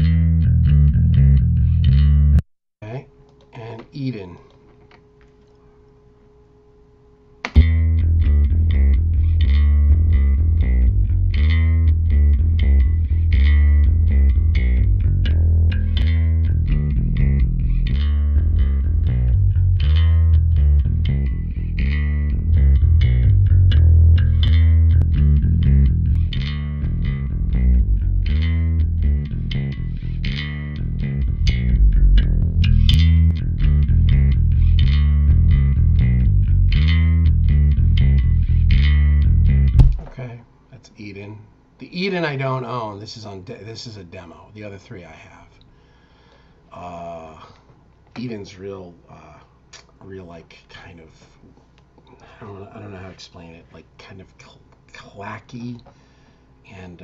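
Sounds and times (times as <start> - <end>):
electric bass guitar line: 0.0 - 2.4, 7.5 - 40.2.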